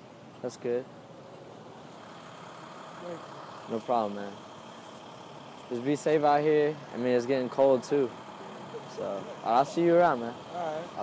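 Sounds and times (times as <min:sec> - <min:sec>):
street traffic hum: 0:00.0 - 0:11.0.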